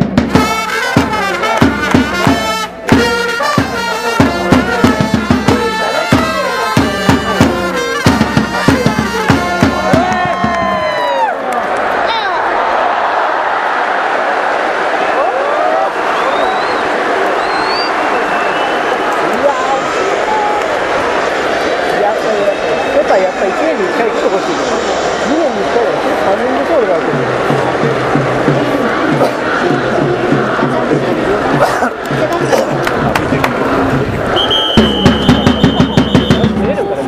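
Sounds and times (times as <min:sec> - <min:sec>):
stadium crowd chatter and shouting: 0:00.0 - 0:37.0
trumpets and drums cheer song: 0:00.0 - 0:37.0.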